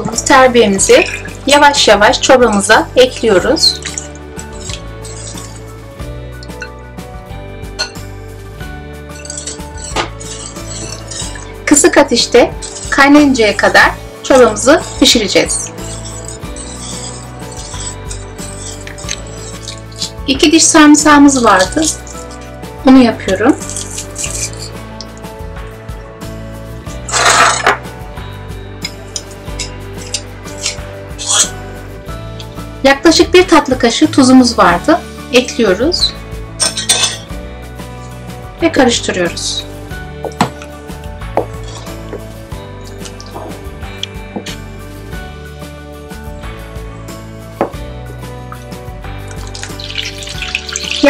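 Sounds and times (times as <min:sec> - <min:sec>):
background music: 0:00.0 - 0:51.0
wooden spoon stirring in pot: 0:03.4 - 0:05.9, 0:09.1 - 0:22.8, 0:23.5 - 0:25.2, 0:28.8 - 0:31.5, 0:41.4 - 0:43.7, 0:48.6 - 0:51.0
butter sizzling in a pan: 0:49.3 - 0:51.0.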